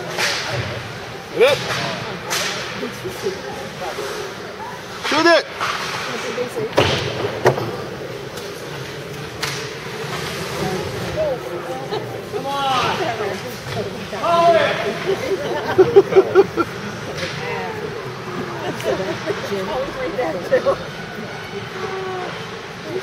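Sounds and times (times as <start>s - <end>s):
rink background noise: 0.0s - 23.0s.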